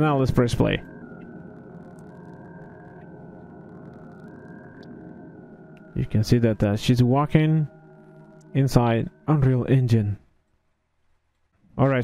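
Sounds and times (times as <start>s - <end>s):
ambient synthesizer music: 0.0s - 10.8s.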